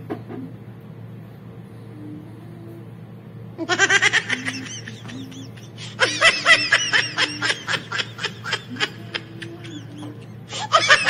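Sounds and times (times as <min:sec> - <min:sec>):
rapid high-pitched laughter: 0:03.6 - 0:11.0.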